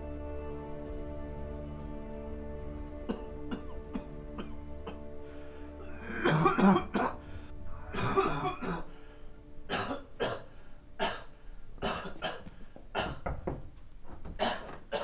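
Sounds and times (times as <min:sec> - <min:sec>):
soft music with held notes: 0:00.0 - 0:13.2
man coughing: 0:06.1 - 0:07.2, 0:07.9 - 0:08.9.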